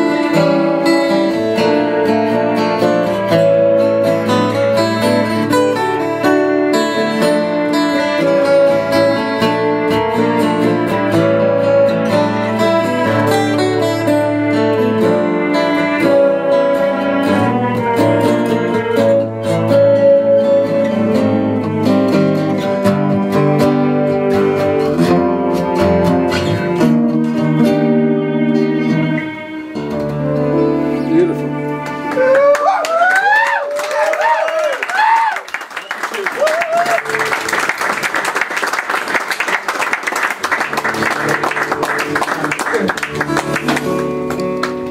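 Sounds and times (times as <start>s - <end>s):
acoustic guitars playing: 0.0s - 34.4s, 36.7s - 44.9s
keyboard sustained notes: 5.4s - 32.7s.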